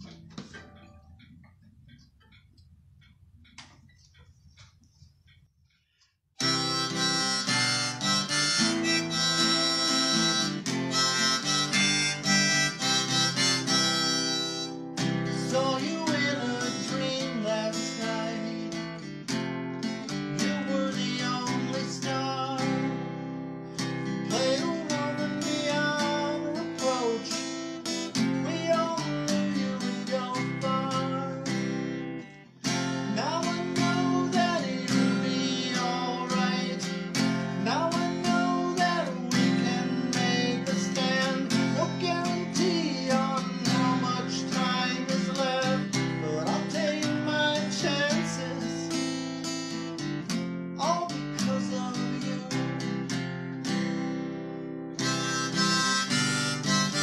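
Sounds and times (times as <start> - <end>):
acoustic guitar strumming: 0.0 - 2.5, 6.4 - 57.0
harmonica melody: 6.4 - 18.0, 22.5 - 31.7, 32.6 - 47.7, 54.9 - 57.0.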